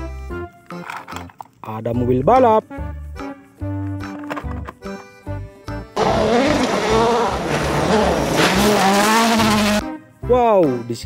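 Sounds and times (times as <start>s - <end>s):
background music with steady beat: 0.0s - 0.9s, 1.7s - 6.0s, 8.4s - 11.0s
tyres on gravel: 6.0s - 9.8s
rally car engine revving: 6.0s - 9.9s.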